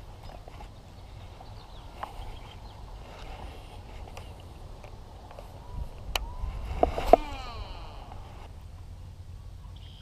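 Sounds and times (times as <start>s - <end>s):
reel spool whirring: 6.2s - 8.5s.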